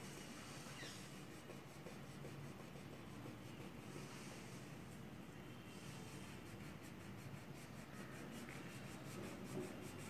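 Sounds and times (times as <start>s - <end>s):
crayon rubbing on paper: 0.2s - 4.1s, 6.0s - 10.0s.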